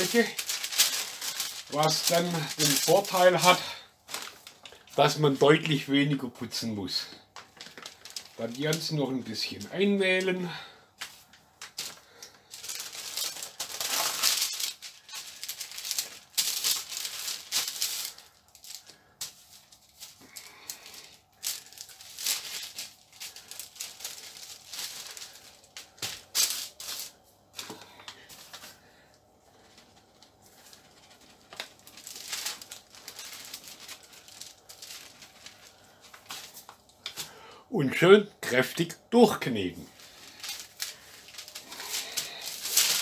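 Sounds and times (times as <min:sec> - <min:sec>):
paper rustling and crinkling: 0:00.0 - 0:37.4, 0:39.8 - 0:43.0.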